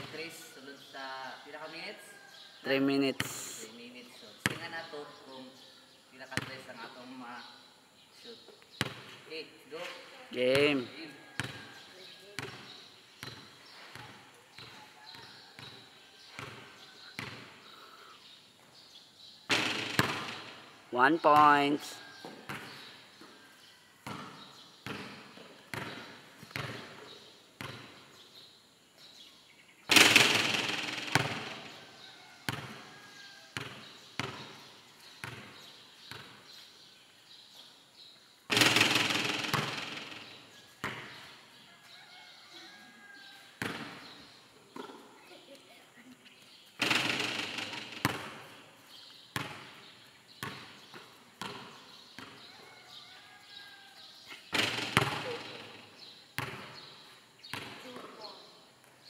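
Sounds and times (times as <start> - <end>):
basketball bouncing on concrete: 4.4 - 4.8, 6.4 - 6.7, 8.8 - 9.2, 10.5 - 17.5, 19.5 - 20.7, 22.2 - 23.4, 24.0 - 28.2, 29.9 - 36.5, 38.5 - 41.3, 43.6 - 45.1, 46.8 - 48.6, 49.3 - 52.6, 54.5 - 58.2
ball crashing on metal backboard: 19.5 - 20.6, 29.9 - 31.8, 38.5 - 41.0, 46.8 - 48.4, 54.5 - 55.8.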